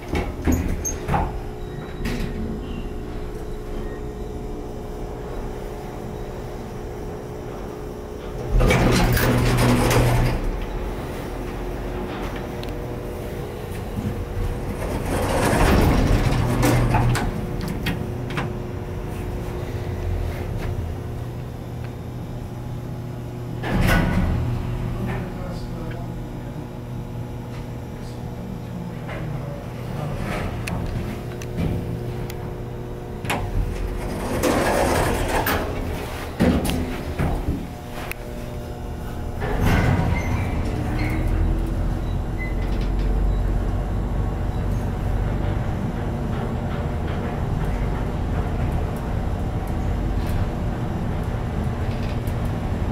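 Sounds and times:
elevator doors sliding closed: 0.0 - 4.0, 8.2 - 21.0, 23.6 - 25.3, 29.8 - 32.0, 33.2 - 52.9
elevator car humming: 0.0 - 52.9.

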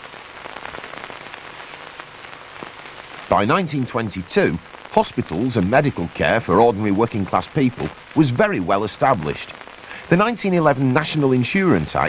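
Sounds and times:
crackling hiss with clicks: 0.0 - 12.0.

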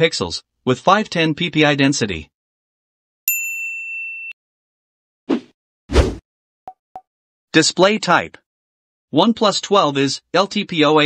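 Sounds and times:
bright bell-like ding: 3.3 - 4.4.

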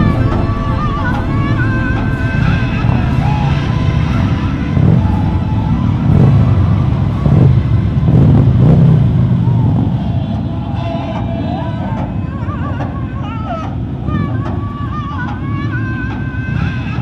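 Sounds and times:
motorcycle engines revving: 0.0 - 13.0.

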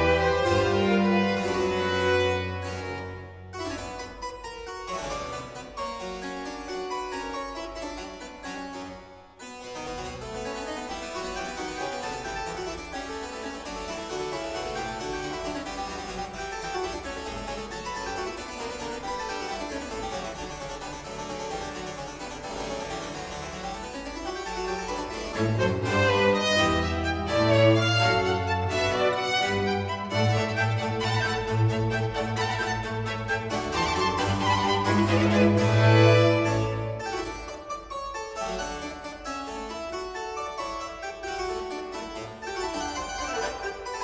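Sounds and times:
string ensemble: 0.0 - 4.2, 10.0 - 39.9
fast harpsichord solo: 0.0 - 44.0.

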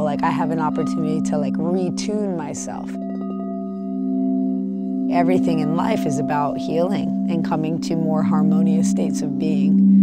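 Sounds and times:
crystal singing bowls ringing: 0.0 - 10.0.

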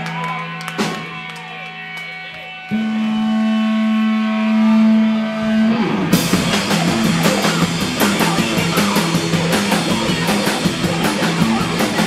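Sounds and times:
sustained electric guitar note: 2.7 - 8.6.

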